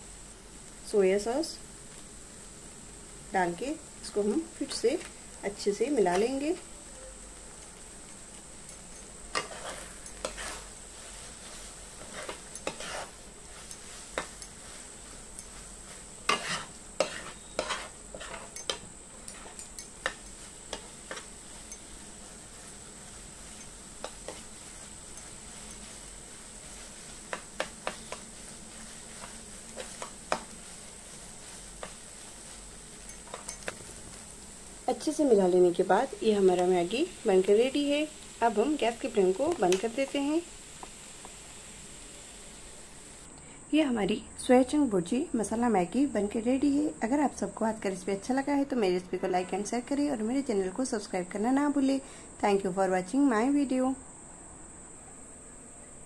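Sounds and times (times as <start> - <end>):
faint sizzle from pan: 0.0 - 56.0
metal spatula scraping a pan: 8.8 - 33.8.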